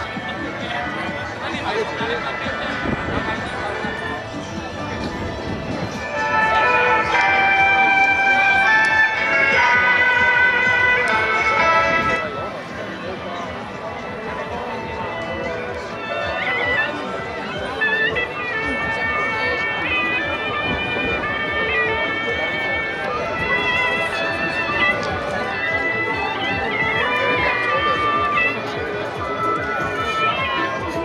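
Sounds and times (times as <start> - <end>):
shawm melody: 0.0 - 13.0, 14.1 - 31.0
crowd chatter: 0.0 - 31.0.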